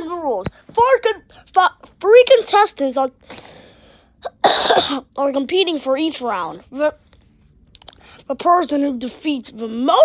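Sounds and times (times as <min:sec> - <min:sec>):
person coughing: 0:04.2 - 0:05.1.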